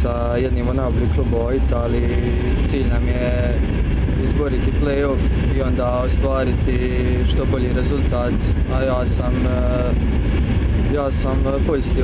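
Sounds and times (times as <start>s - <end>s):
train rumble inside carriage: 0.0s - 12.0s.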